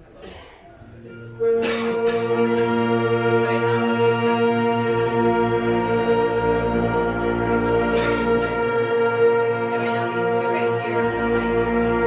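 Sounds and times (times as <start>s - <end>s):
concert band holding chords: 1.1s - 12.0s.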